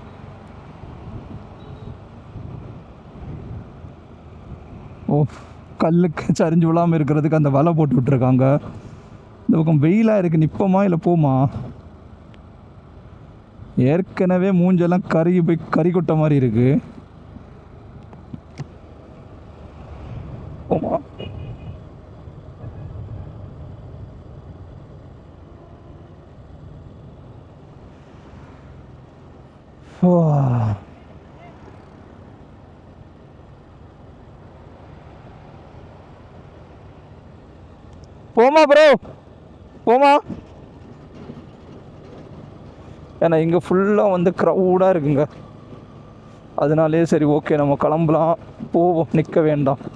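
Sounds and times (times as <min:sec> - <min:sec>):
motorcycle engine and road rumble: 0:00.0 - 0:49.9
person shouting: 0:30.0 - 0:31.6, 0:38.4 - 0:39.0.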